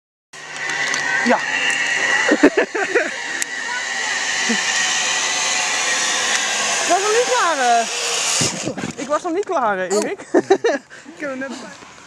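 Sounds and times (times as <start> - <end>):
zip-line pulley whirring on cable: 0.4 - 9.4.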